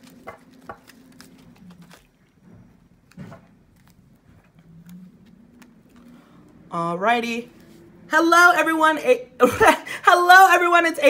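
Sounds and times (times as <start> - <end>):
faint low hum: 0.0 - 10.4.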